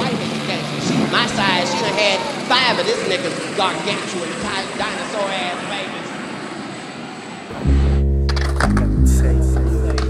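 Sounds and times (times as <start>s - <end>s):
aircraft engine rushing: 0.0s - 7.9s
music with heavy bass line: 7.5s - 10.0s.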